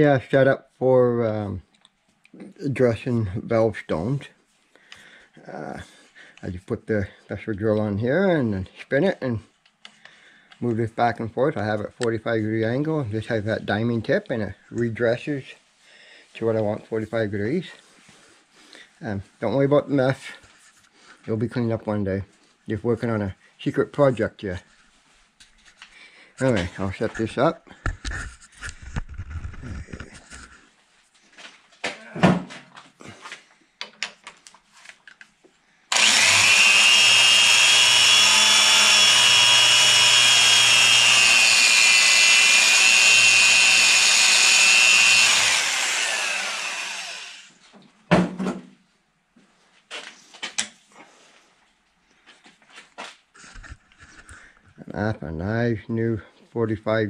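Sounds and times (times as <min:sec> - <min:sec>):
electric drill grinding whine: 0:35.9 - 0:47.6.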